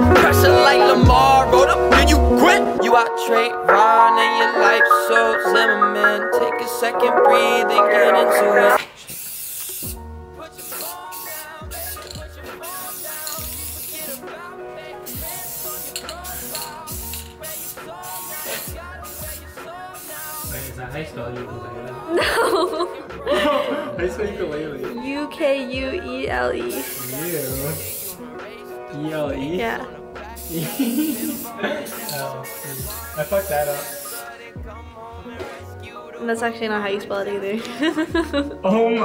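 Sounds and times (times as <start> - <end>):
background music with deep bass: 0.0 - 8.8, 9.8 - 39.0
spray can hissing: 8.8 - 14.4, 15.0 - 20.8, 26.7 - 28.3, 30.3 - 34.6.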